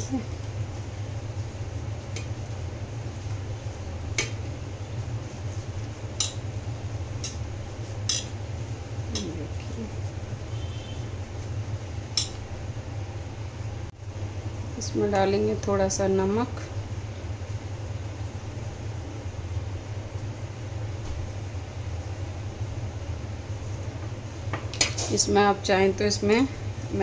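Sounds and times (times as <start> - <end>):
hands kneading mixture: 0.0 - 12.8
steady low hum: 0.0 - 27.0.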